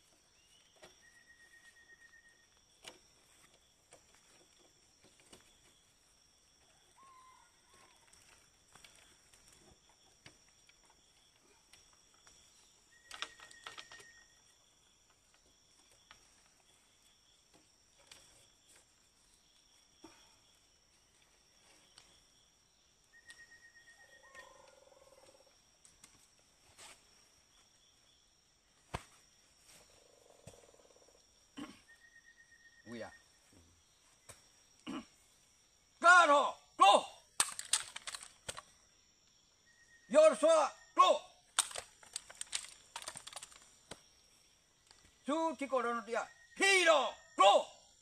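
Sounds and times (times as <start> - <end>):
insect drone: 0.0 - 48.0
rifles clicking and clacking: 37.4 - 38.6, 41.6 - 43.6.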